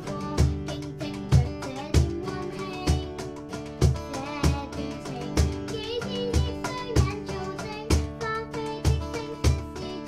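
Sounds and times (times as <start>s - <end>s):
girl singing into microphone: 0.0s - 10.0s
strummed acoustic guitar: 0.0s - 10.0s.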